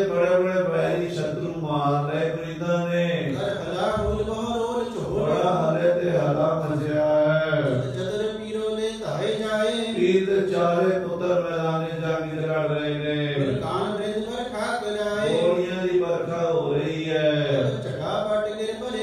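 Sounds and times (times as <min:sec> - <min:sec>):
man chanting melodically: 0:00.0 - 0:19.0.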